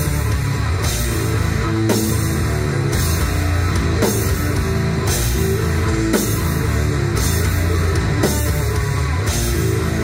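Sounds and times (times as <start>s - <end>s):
heavy band playing live: 0.0s - 10.0s.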